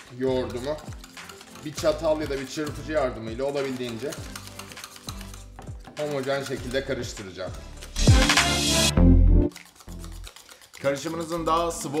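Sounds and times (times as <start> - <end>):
yogurt beaten in steel container: 0.0 - 8.1, 9.5 - 12.0
background music with steady beat: 0.0 - 12.0.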